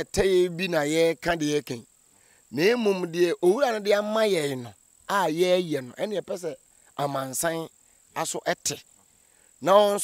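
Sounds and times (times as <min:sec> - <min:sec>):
man talking: 0:00.0 - 0:01.9, 0:02.5 - 0:08.8, 0:09.6 - 0:10.0
crickets chirring: 0:00.0 - 0:10.0.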